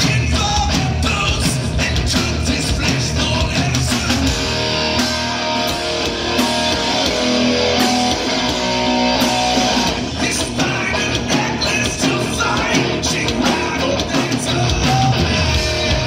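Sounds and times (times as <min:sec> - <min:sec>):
live hard rock band: 0:00.0 - 0:16.0
sustained guitar notes: 0:04.2 - 0:16.0.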